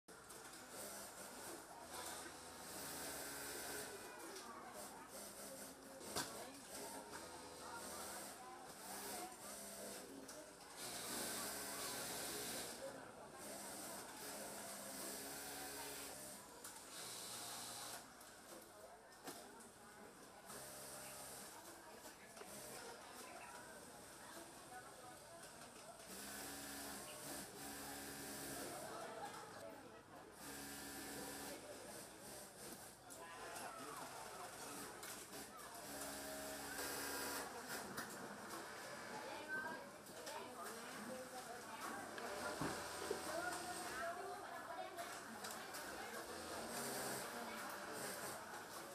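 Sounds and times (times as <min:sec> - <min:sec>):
sewing machine humming: 0:35.3 - 0:37.4.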